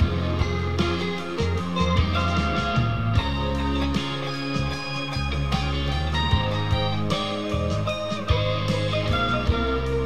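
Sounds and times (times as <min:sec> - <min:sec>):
backing track with bass and drums: 0:00.0 - 0:10.0
electric guitar blues lead: 0:00.0 - 0:10.0.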